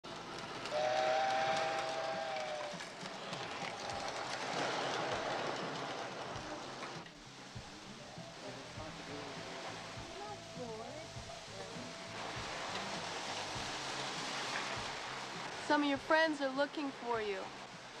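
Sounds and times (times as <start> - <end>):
model train rumbling on track: 0.0 - 18.0
model train two-note horn: 0.6 - 2.7.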